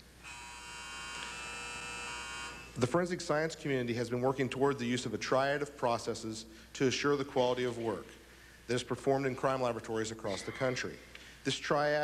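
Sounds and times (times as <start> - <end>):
electric buzzer: 0.2 - 2.8.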